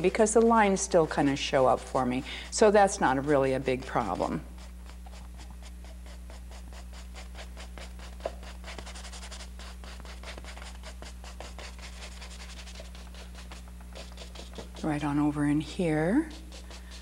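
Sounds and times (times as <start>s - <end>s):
low electrical hum: 0.0s - 17.0s
paintbrush scratching canvas: 0.0s - 17.0s.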